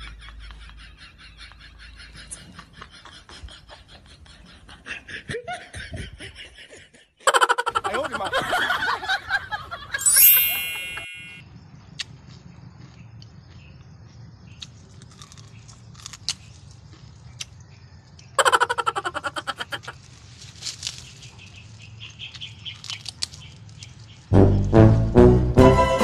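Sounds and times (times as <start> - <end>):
short chirps: 10.0 - 11.4.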